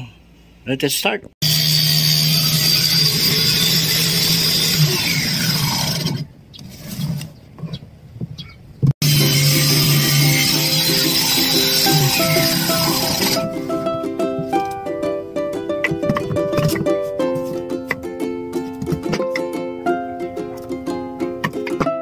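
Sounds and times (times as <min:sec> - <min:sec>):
table saw cutting plywood: 0:01.4 - 0:06.3, 0:09.0 - 0:13.7
plucked-string music: 0:09.0 - 0:22.0.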